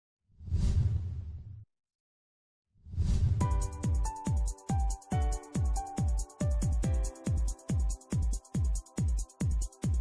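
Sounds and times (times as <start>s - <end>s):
whoosh with deep rumble: 0.4s - 1.6s, 2.9s - 3.4s.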